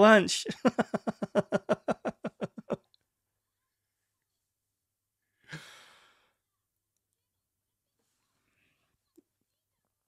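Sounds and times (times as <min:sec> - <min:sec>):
man sighing: 0:05.5 - 0:06.2.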